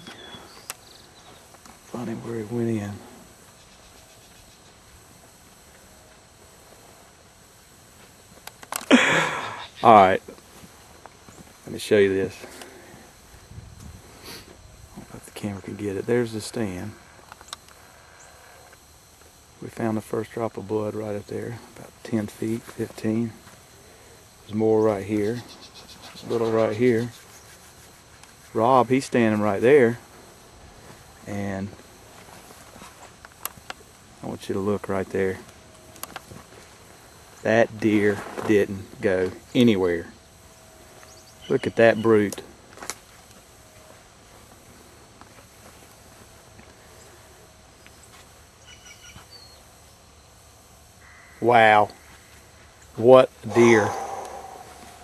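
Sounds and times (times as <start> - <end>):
outdoor background hiss: 0.0 - 55.0
sharp clicks underfoot: 35.4 - 36.6.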